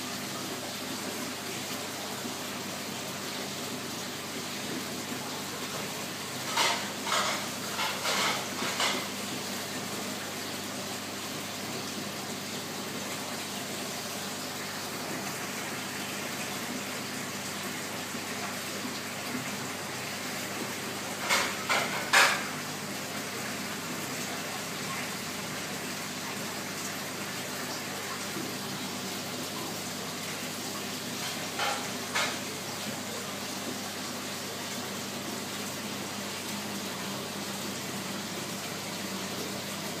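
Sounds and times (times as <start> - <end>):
aquarium filter water trickling: 0.0 - 40.0.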